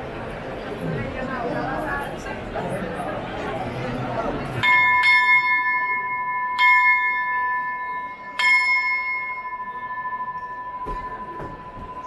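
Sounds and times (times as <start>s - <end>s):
hand bell ringing: 4.6s - 12.0s.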